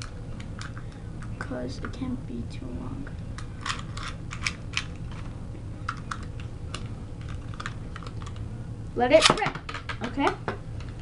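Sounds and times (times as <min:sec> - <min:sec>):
low hum: 0:00.0 - 0:09.0.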